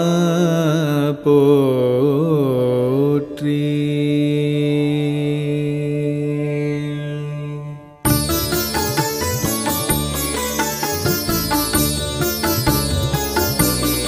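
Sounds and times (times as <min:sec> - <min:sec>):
man singing devotional song: 0:00.0 - 0:07.3.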